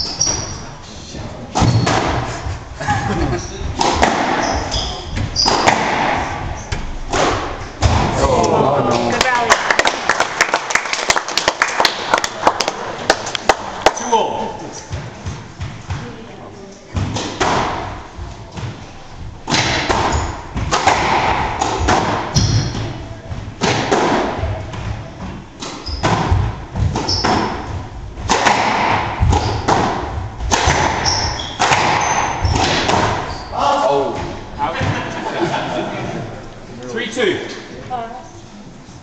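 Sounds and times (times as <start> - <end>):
squash ball struck by rackets: 1.5 - 2.4, 3.8 - 8.2, 17.0 - 18.8, 19.4 - 33.3.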